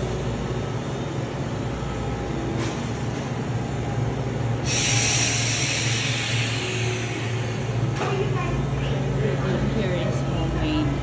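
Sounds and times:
fans hissing: 0.0 - 11.0
freezer compressors humming: 0.0 - 11.0.

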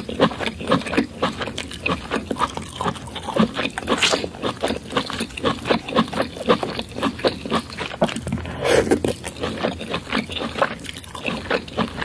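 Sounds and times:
wet chewing and lip-smacking: 0.0 - 12.0.

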